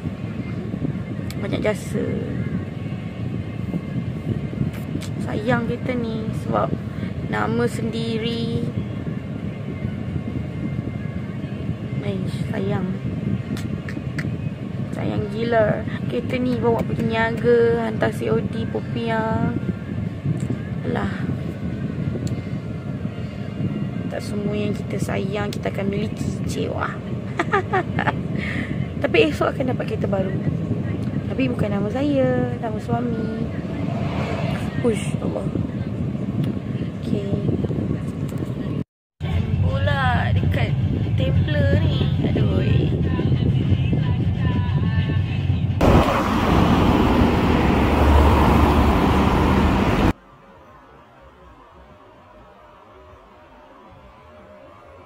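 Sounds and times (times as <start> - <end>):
car engine and road noise: 0.0 - 55.0.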